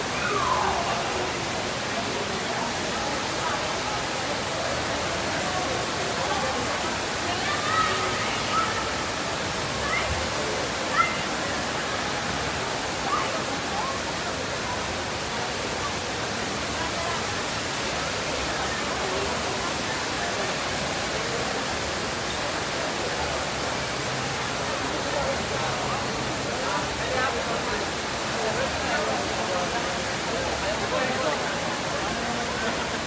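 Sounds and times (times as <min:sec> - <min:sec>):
faint voices: 0:00.0 - 0:33.0
indoor waterfall rushing: 0:00.0 - 0:33.0.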